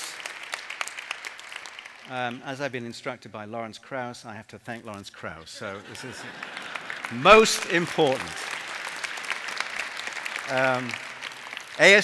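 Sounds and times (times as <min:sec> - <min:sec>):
audience applauding: 0:00.0 - 0:02.4, 0:05.6 - 0:12.0.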